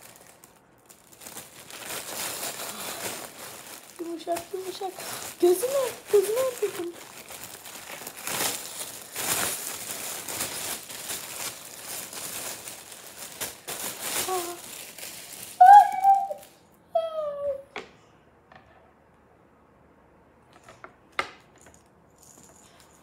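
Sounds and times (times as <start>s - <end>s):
wrapping paper crinkling and tearing: 0.0s - 16.6s
child vocalizing: 14.2s - 14.6s, 15.6s - 16.4s, 17.0s - 17.7s.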